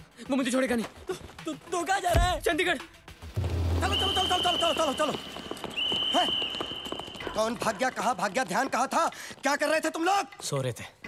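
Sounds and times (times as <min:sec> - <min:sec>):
horse hooves clip-clopping: 0:04.4 - 0:10.1.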